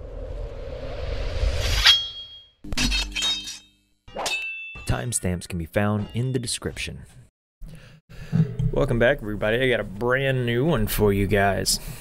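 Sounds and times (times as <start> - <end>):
metallic clang: 1.8 - 5.0.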